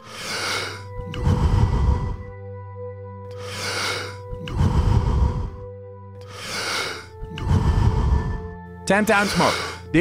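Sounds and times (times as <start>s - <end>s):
man breathing forcefully: 0.0s - 2.4s, 3.3s - 8.6s, 9.2s - 9.9s
droning ambient music: 0.0s - 10.0s.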